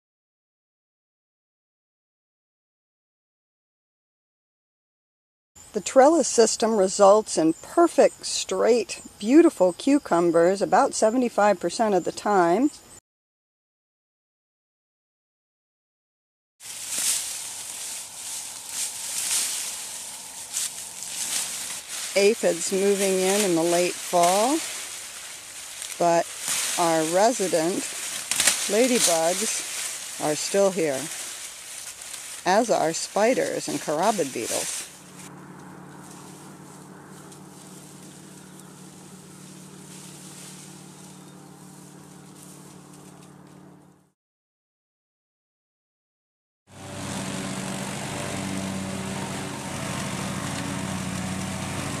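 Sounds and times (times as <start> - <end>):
light hiss: 16.6 - 32.6
dry vines rustling and crackling: 16.6 - 44.0
small engine idling: 16.6 - 44.0, 46.7 - 52.0.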